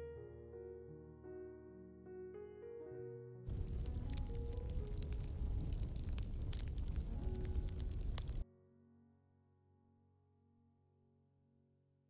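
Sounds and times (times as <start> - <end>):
soft background music: 0.0 - 11.6.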